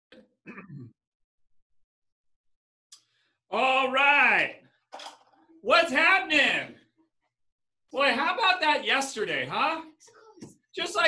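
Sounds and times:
man clearing his throat: 0.1s - 1.0s.

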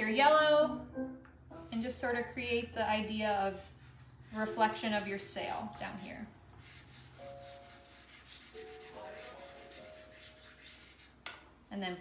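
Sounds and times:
chalk pastel scratching on paper: 1.7s - 1.9s, 3.3s - 12.0s.

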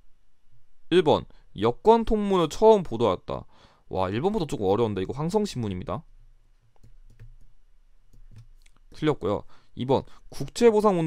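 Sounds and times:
stylus tapping tablet screen: 6.6s - 8.7s.

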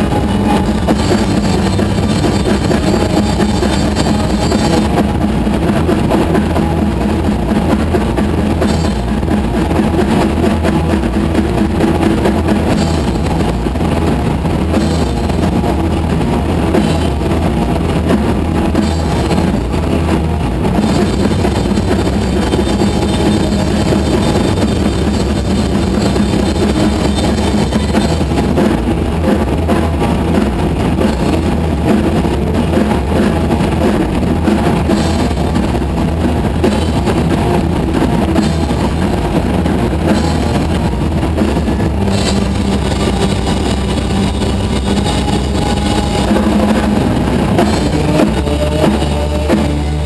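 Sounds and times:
deep hum: 0.0s - 50.0s
distorted guitar and keyboard drone: 0.0s - 50.0s
noise-rock band: 0.0s - 50.0s.

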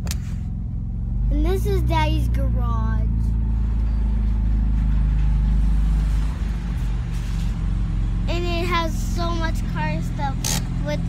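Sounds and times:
car engine running at low speed: 0.0s - 11.0s.

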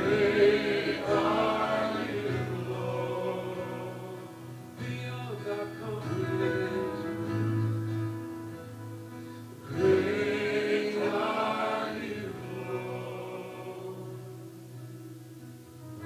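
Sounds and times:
men singing worship music: 0.0s - 7.6s, 9.6s - 14.6s
acoustic guitar: 0.0s - 16.0s
keyboard: 0.0s - 16.0s.

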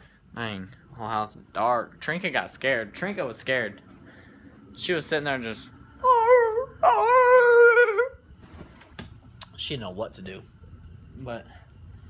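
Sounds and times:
man whining in falsetto: 6.0s - 8.2s.

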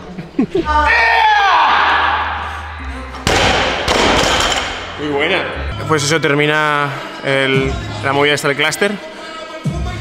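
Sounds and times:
barbell crashing onto floor: 3.3s - 4.9s.

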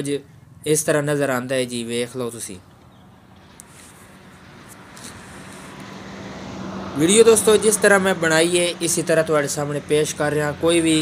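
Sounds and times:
vehicle engine running: 0.2s - 11.0s.

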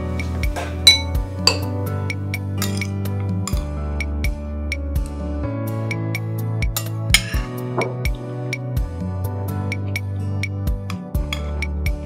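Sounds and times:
soft background music: 0.0s - 12.0s
cutlery clinking against dishes: 0.6s - 1.8s.

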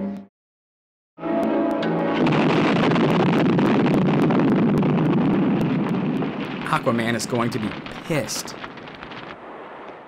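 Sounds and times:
film music: 1.2s - 3.2s
explosion roar: 1.8s - 10.0s.

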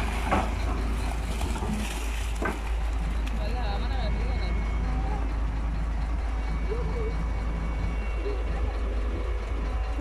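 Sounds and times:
heavy diesel engines running: 0.0s - 10.0s.

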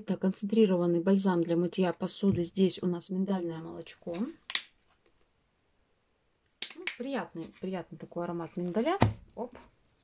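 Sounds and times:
woman speaking: 0.0s - 4.4s, 6.8s - 9.7s.

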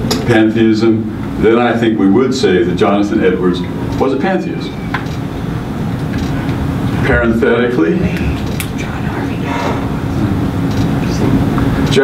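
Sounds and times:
faint constant hum: 0.0s - 12.0s
man speaking: 7.0s - 12.0s.

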